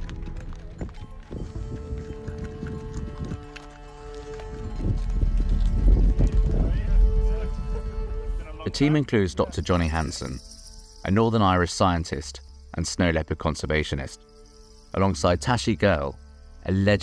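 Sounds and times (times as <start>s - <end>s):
hooves clopping on dirt: 0.0s - 8.1s
background music: 0.0s - 17.0s.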